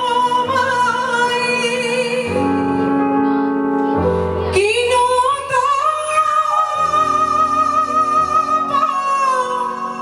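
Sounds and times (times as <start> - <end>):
woman singing with vibrato: 0.0 - 2.7, 4.4 - 10.0.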